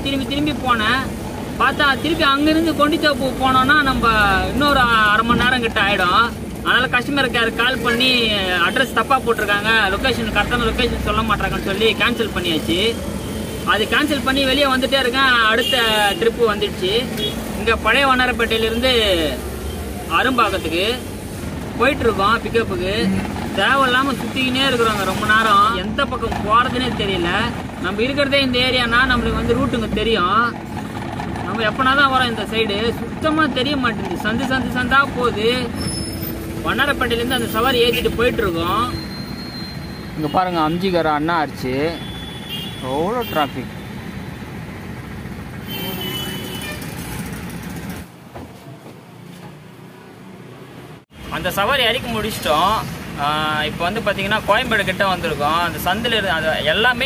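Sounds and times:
man talking: 0:00.0 - 0:21.1, 0:31.4 - 0:35.8, 0:36.5 - 0:39.0, 0:40.2 - 0:42.1, 0:42.8 - 0:43.8, 0:51.3 - 0:57.0
truck engine hum: 0:00.0 - 0:40.3
road traffic: 0:00.0 - 0:57.0.

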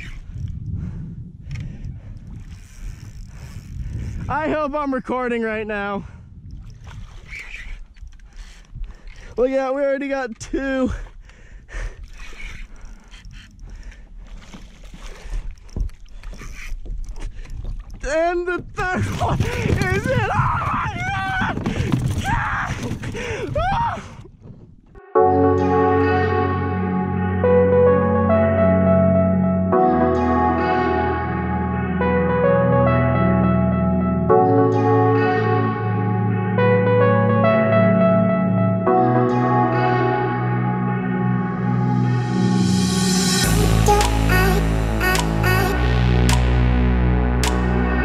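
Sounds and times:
low rumbling of kayak gear handling: 0:00.0 - 0:04.8, 0:06.2 - 0:09.4, 0:10.1 - 0:25.0
ambient synthesizer and electric piano music: 0:25.0 - 0:48.0.

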